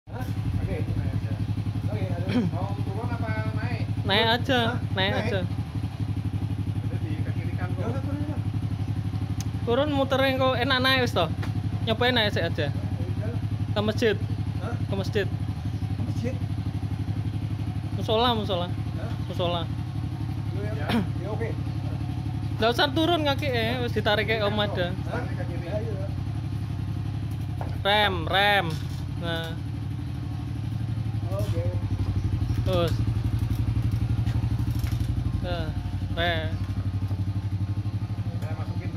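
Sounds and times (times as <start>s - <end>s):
motorcycle engine idling: 0.1s - 38.9s.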